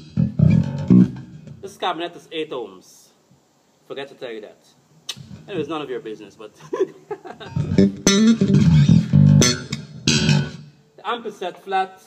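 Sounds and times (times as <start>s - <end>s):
plucked electric bass notes: 0.0s - 1.6s, 7.5s - 10.7s.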